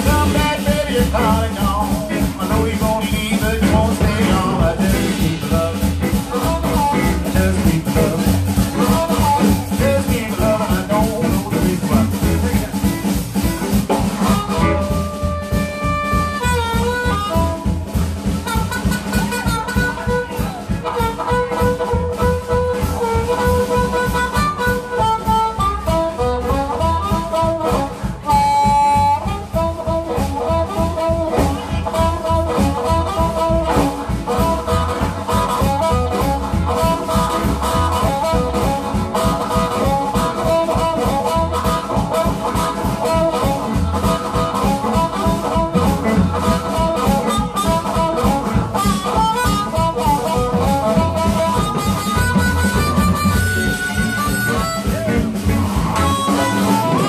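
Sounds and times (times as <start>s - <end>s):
blues band playing: 0.0s - 57.0s
harmonica solo: 0.0s - 57.0s.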